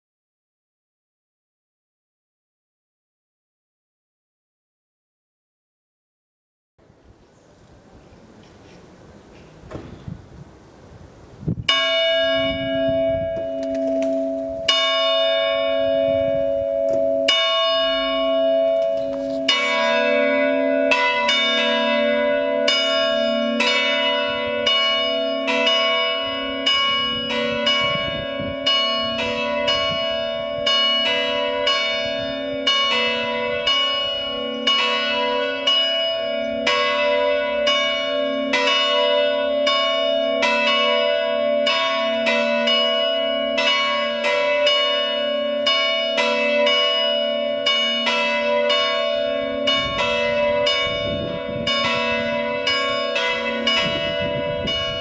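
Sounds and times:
church bells ringing: 11.6s - 55.0s.

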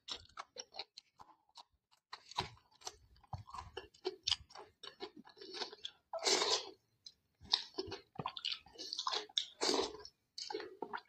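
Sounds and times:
wet chewing and lip-smacking: 0.0s - 11.0s.

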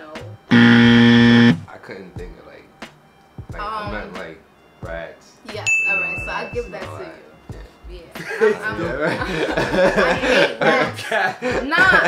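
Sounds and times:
harsh buzzer: 0.5s - 1.7s.

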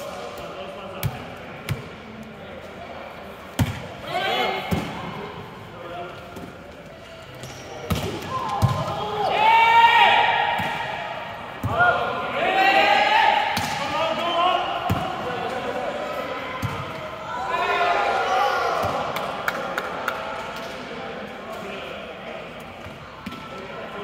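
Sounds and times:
players calling and shouting: 3.0s - 24.0s.

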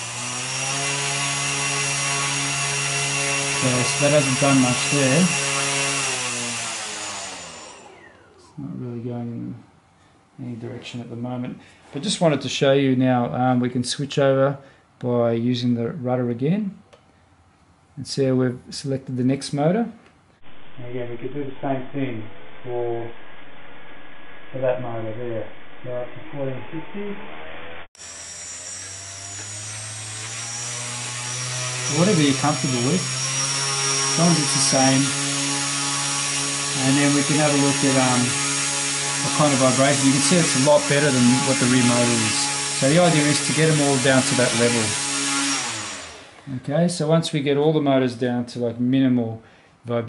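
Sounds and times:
motor and propeller spinning down: 0.0s - 8.7s, 20.4s - 46.4s.

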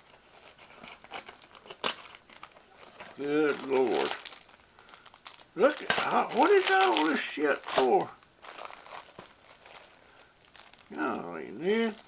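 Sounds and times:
plastic bags crinkling: 0.0s - 12.0s.

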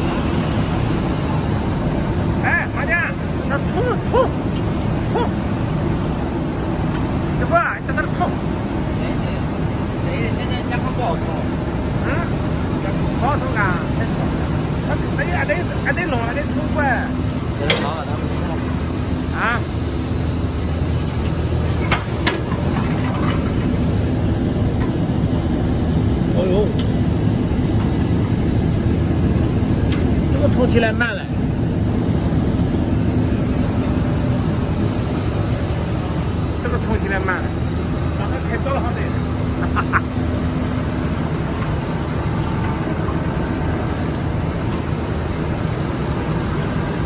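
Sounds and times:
blower and motor noise: 0.0s - 47.0s.

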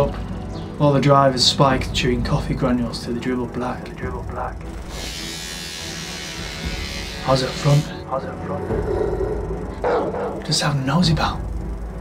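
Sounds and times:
electric hair clippers buzzing: 4.6s - 8.0s.

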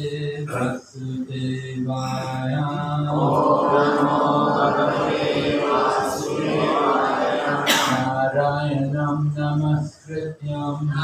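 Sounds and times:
man chanting in held notes: 0.0s - 5.0s, 7.9s - 11.0s
group of voices chanting: 3.1s - 8.4s.

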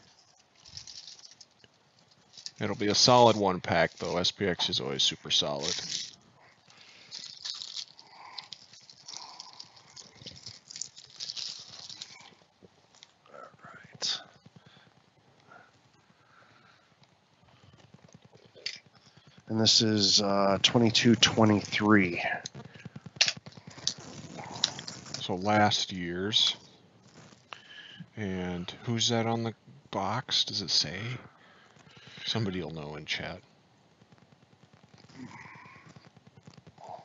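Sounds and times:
plastic wrap crackling: 0.0s - 25.6s, 26.5s - 27.9s, 31.3s - 32.9s, 34.0s - 37.0s.

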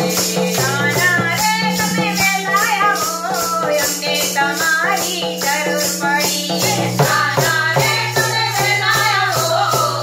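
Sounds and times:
tabla drums: 0.0s - 10.0s
women singing together: 0.0s - 10.0s.

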